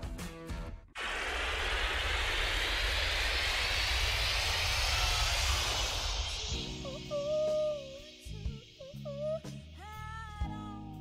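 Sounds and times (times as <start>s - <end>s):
deep low rumble: 1.0s - 9.8s
rising whoosh: 1.0s - 9.8s.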